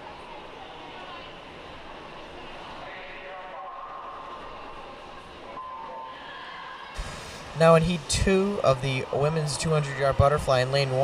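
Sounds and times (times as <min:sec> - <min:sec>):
swimming pool hall hum: 0:00.0 - 0:11.0
brief sharp sound: 0:07.0 - 0:08.1.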